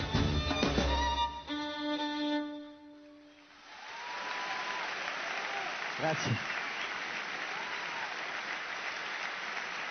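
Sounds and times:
audience applause: 0:03.6 - 0:09.9.

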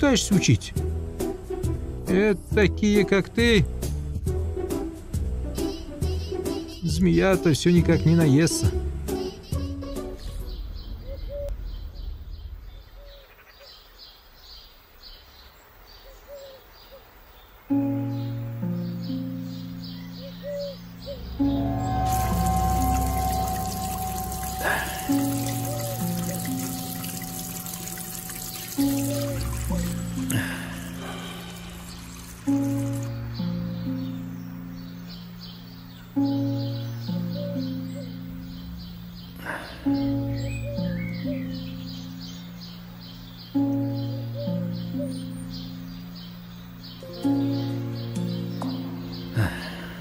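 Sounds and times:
slow sustained music chords: 0:17.7 - 0:50.0
water running from a tap: 0:21.9 - 0:33.2.

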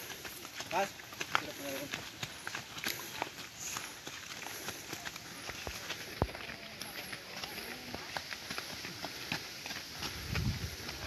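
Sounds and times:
crowd footsteps on pavement: 0:00.0 - 0:11.0
faint voices: 0:00.7 - 0:11.0.

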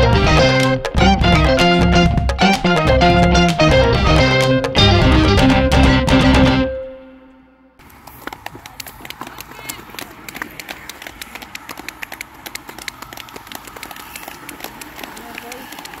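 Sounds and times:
spectators clapping: 0:07.8 - 0:16.0
voices: 0:08.3 - 0:16.0.

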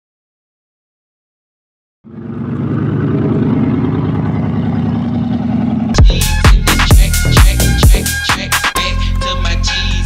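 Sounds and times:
car engine running: 0:02.0 - 0:08.8.

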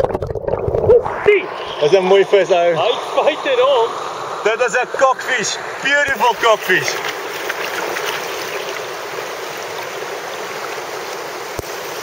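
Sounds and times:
mountain stream rushing over rocks: 0:01.6 - 0:12.0.

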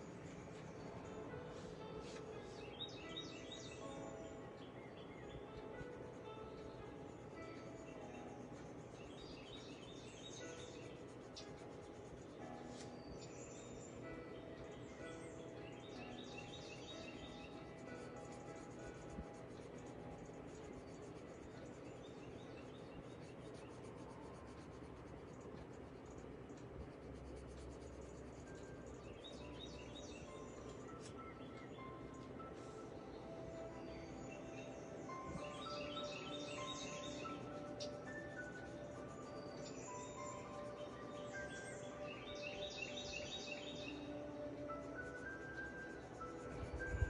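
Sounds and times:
soft music: 0:00.0 - 0:47.0
colored pencil scratching on paper: 0:00.3 - 0:03.7, 0:08.2 - 0:13.4, 0:17.4 - 0:31.2.

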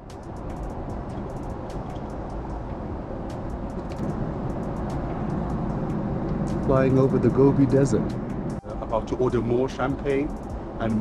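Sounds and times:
airliner cabin rushing noise: 0:00.0 - 0:08.5.

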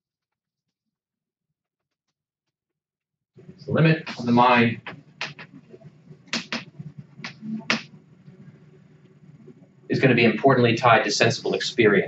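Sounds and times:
faint room noise: 0:03.4 - 0:12.0.

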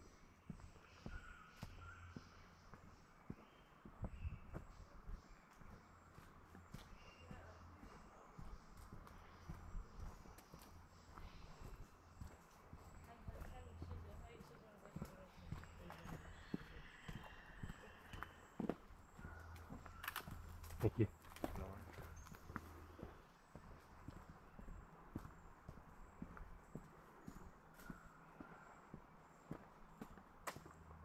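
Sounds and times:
footsteps on leafy dirt path: 0:00.4 - 0:30.8.

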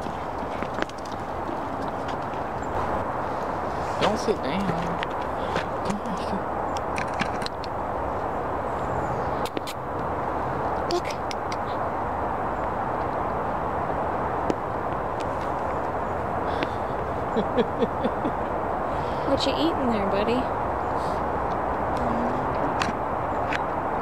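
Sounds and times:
outdoor background rush: 0:00.0 - 0:24.0.

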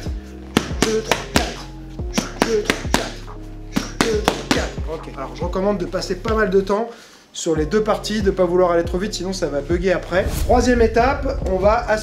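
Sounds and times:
background music: 0:00.0 - 0:12.0
boxing gloves smacking mitts: 0:00.5 - 0:03.2, 0:03.8 - 0:04.8.

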